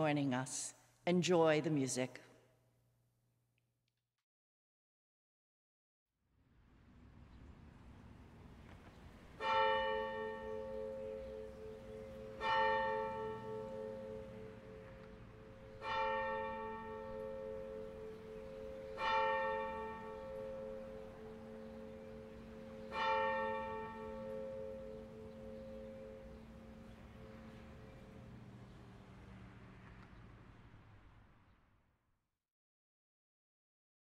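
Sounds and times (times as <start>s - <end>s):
church bell tolling: 9.2s - 28.8s.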